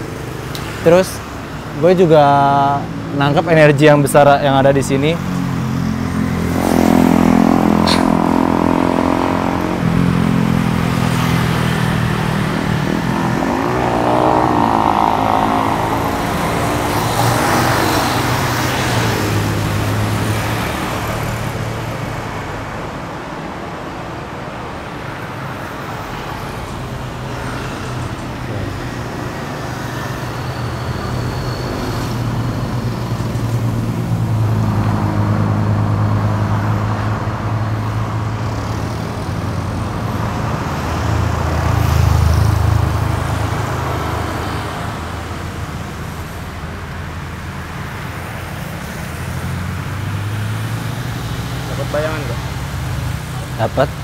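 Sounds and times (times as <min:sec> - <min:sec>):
car engine passing: 0:04.9 - 0:23.1
motorcycle engine passing: 0:06.2 - 0:19.5.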